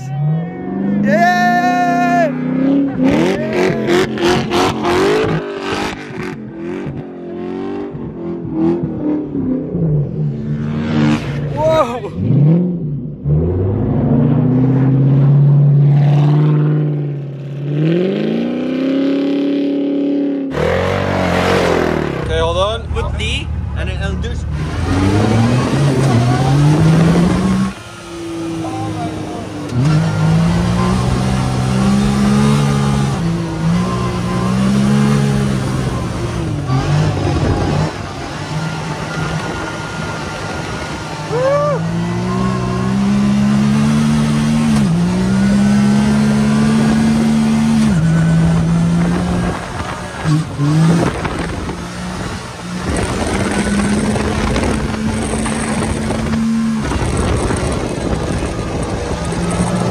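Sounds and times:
car engine revving: 1.9s - 59.9s.

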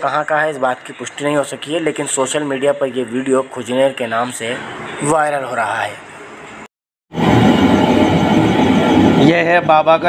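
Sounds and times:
loud rumbling roar: 7.2s - 9.7s.

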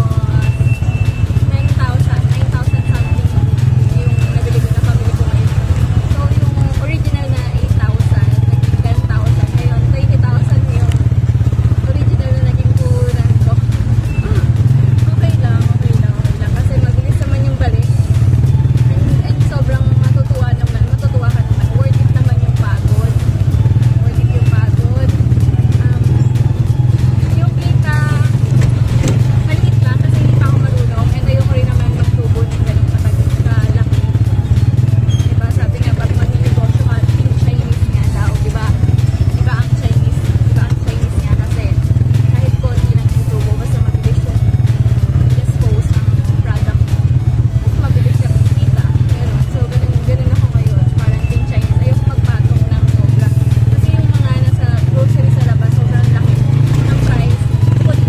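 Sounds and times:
woman talking: 0.0s - 34.3s, 35.0s - 58.0s
vehicle engine droning: 0.0s - 58.0s.

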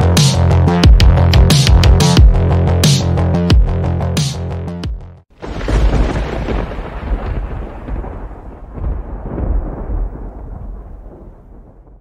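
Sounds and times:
deep rumbling explosion: 5.4s - 12.0s.

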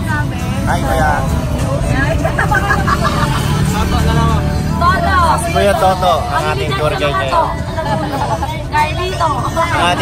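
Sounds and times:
vehicle rumble: 0.0s - 10.0s.

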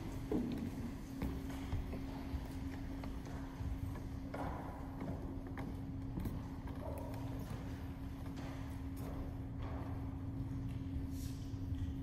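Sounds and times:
shoes clicking on floor: 0.0s - 11.1s
low electrical hum: 0.0s - 12.0s.

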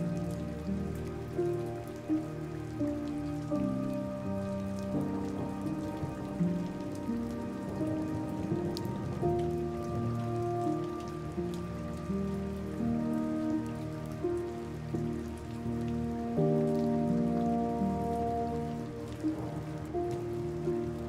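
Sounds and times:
rain falling: 0.0s - 21.0s
slow relaxation music: 0.0s - 21.0s.

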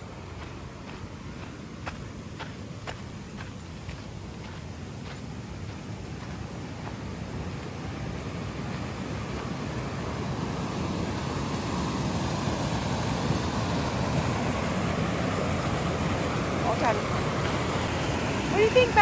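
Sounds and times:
waterfall rushing water: 0.0s - 19.0s.

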